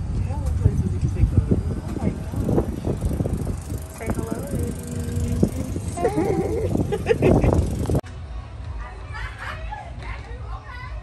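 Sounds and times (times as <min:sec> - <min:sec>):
wind buffeting microphone: 0:00.0 - 0:08.0
people talking: 0:03.9 - 0:06.7.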